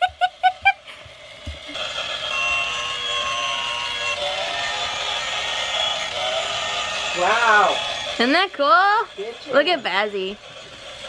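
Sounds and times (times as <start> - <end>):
laughter: 0.0 - 1.0
toy train electronic tune: 1.8 - 11.0.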